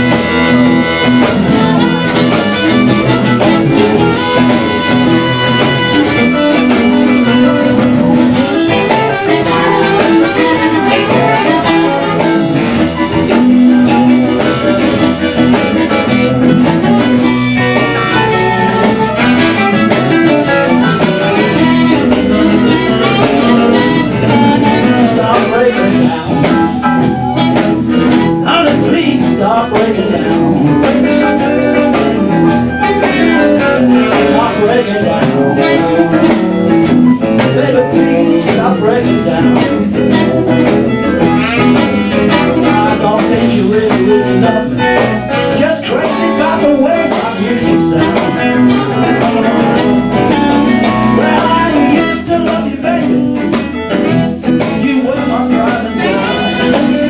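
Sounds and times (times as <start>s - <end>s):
amplified harmonica: 0.0s - 57.0s
blues band playing a shuffle: 0.0s - 57.0s.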